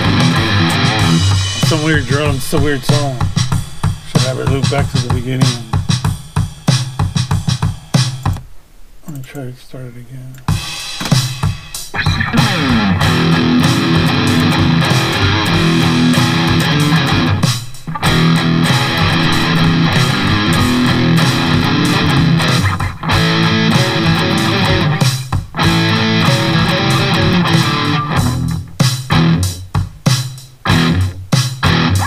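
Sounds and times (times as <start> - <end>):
distorted electric guitar riffing: 0.0 - 8.4, 10.5 - 32.0.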